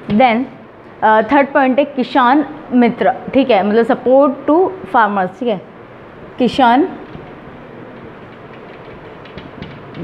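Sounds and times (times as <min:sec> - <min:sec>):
steady background hiss: 0:00.0 - 0:10.0
marker pen on whiteboard: 0:07.0 - 0:10.0.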